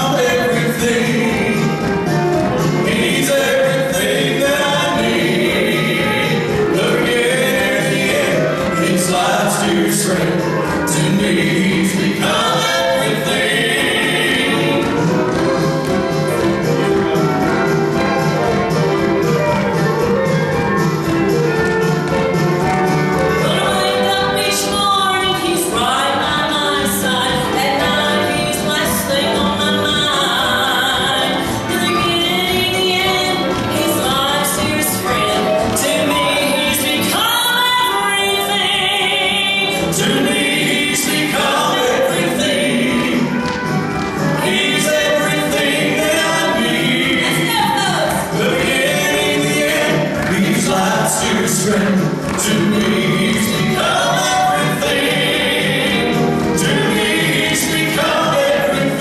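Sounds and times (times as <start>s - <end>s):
vocal trio singing in harmony: 0.0s - 17.4s, 23.3s - 59.0s
orchestral music: 0.0s - 59.0s.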